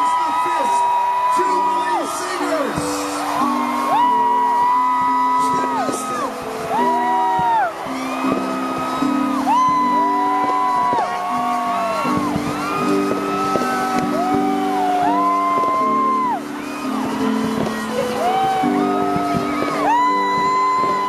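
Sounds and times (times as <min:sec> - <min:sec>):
crowd whooping: 0:00.0 - 0:21.0.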